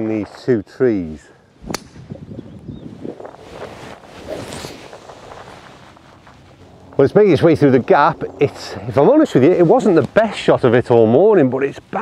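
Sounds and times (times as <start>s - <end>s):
wind noise: 1.5s - 11.0s
faint rustling: 2.8s - 11.9s.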